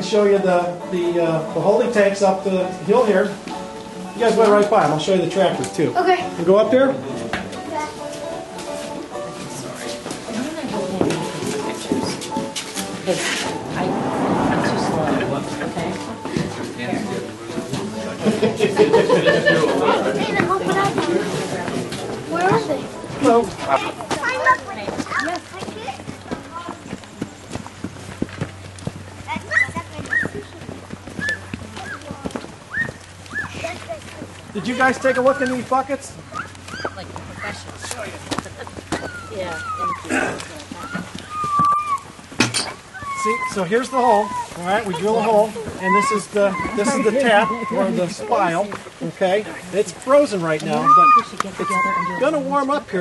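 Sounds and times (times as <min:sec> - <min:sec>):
background music: 0:00.0 - 0:24.8
children talking: 0:00.0 - 0:53.0
children's voices: 0:07.6 - 0:08.4, 0:19.4 - 0:27.0, 0:29.2 - 0:35.4, 0:38.9 - 0:42.2, 0:42.8 - 0:48.6
footsteps on muddy ground: 0:20.4 - 0:47.1.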